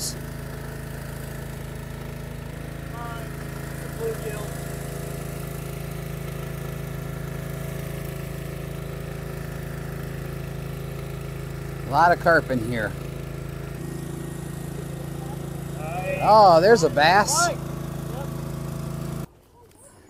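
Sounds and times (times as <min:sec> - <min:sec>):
small boat engine running: 0:00.0 - 0:20.0.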